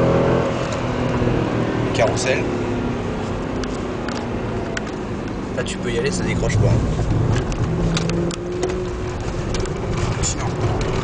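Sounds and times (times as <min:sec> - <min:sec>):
car engine hum: 0:00.0 - 0:11.0
tyre and road noise: 0:00.0 - 0:11.0.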